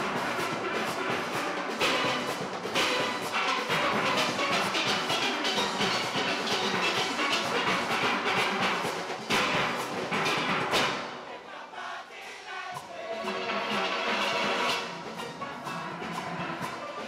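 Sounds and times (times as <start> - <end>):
steel pan orchestra playing: 0.0 - 11.6, 12.8 - 17.0.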